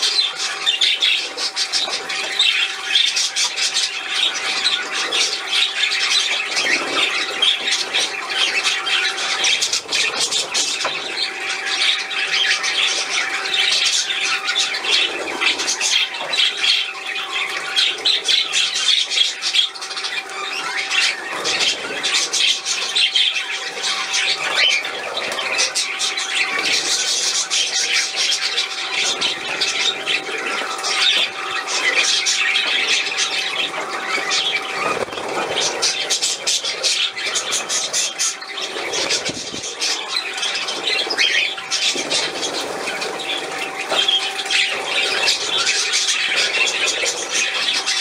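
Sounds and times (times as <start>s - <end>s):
budgerigars chattering and squawking: 0.0s - 48.0s.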